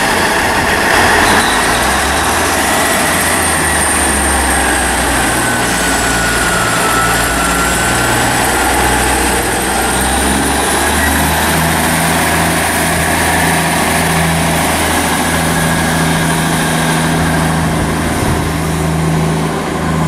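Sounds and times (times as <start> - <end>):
high whine: 0.0 - 20.0
train diesel engines running: 0.0 - 20.0.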